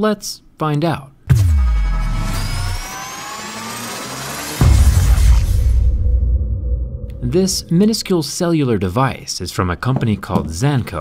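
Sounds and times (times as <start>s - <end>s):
rising tones: 1.4s - 7.9s
low rumble: 1.4s - 8.1s.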